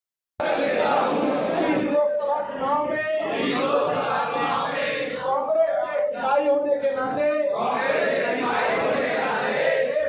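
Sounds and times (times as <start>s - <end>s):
men reciting in unison: 0.4s - 10.0s.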